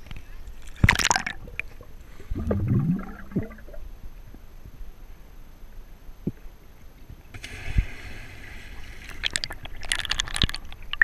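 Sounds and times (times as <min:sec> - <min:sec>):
underwater bubbles and gurgling: 0:00.7 - 0:04.0, 0:07.4 - 0:11.0
splashing crackles: 0:07.4 - 0:11.0.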